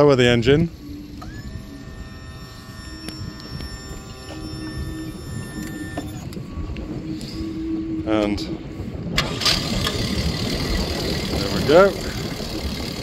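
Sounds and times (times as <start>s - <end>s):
electric tilt motor whining: 0.0s - 13.0s
wind rumble on microphone: 0.0s - 13.0s.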